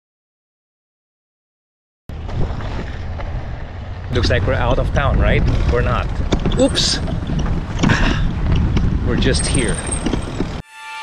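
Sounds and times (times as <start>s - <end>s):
wind buffeting microphone: 2.1s - 10.6s.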